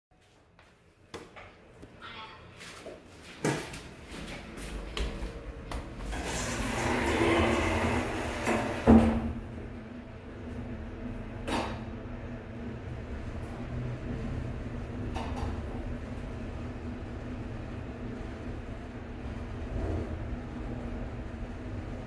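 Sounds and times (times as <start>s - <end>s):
low elevator hum: 0.2s - 22.0s
elevator doors closing: 5.8s - 12.3s.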